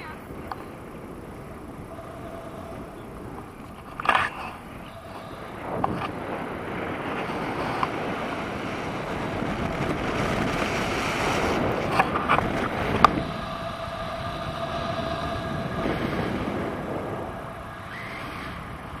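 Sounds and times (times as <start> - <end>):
wind rushing over microphone: 0.0 - 19.0
faint steady whistle: 1.6 - 8.2, 12.2 - 19.0.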